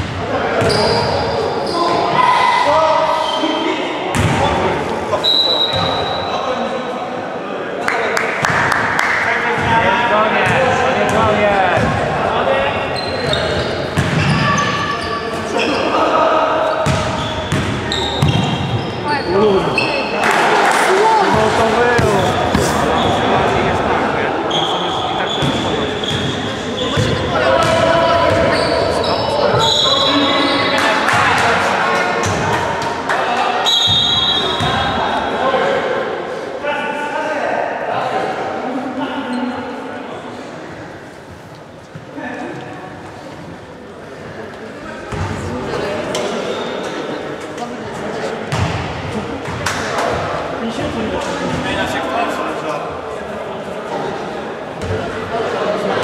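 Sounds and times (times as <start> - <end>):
players' voices echoing: 0.0 - 56.0
men talking indistinctly: 9.0 - 33.7, 44.2 - 56.0.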